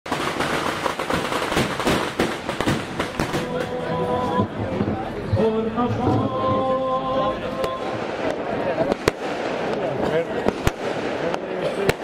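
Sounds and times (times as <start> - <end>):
firecrackers crackling and banging: 0.1 - 6.7, 7.5 - 12.0
crowd voices: 2.5 - 12.0.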